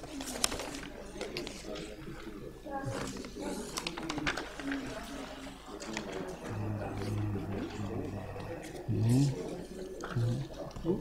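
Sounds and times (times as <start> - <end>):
low voices murmuring: 0.6 - 11.0.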